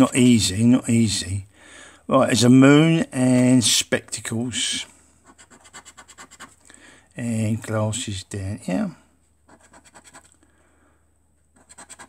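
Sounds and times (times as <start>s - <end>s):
metal scratcher scraping scratchcard: 5.3s - 6.6s, 9.5s - 10.3s, 11.6s - 12.0s.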